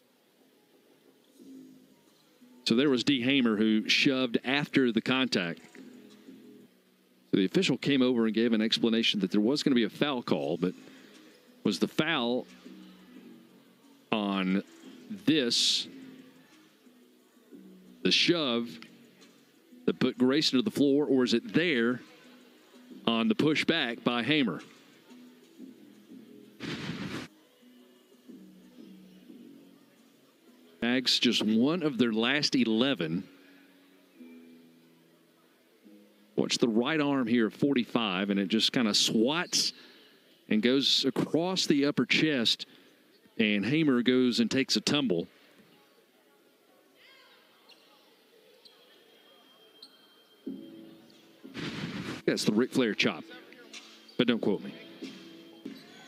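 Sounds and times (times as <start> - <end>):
faint arena background: 0.0 - 56.0.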